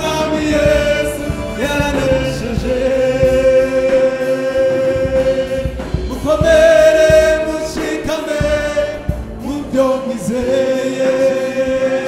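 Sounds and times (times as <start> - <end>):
gospel choir singing in harmony: 0.0 - 12.0.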